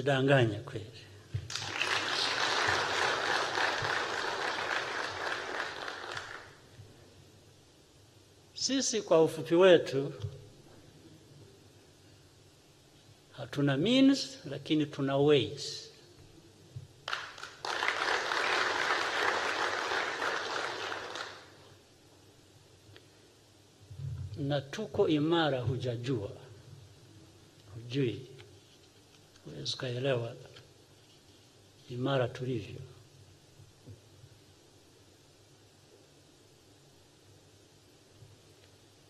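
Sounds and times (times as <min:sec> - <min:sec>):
audience applause: 0:01.5 - 0:06.6, 0:17.1 - 0:21.6.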